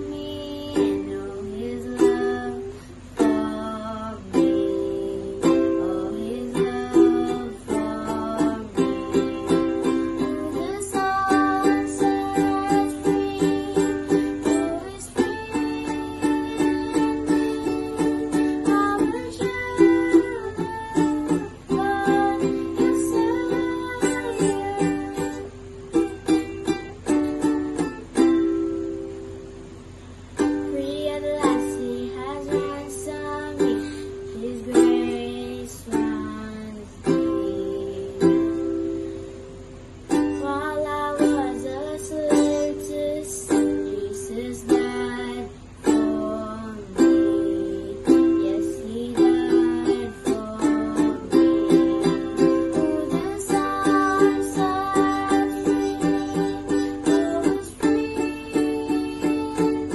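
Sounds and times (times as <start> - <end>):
child singing: 0.0 - 28.4, 30.4 - 38.8, 40.1 - 59.9
ukulele strumming: 0.0 - 59.9.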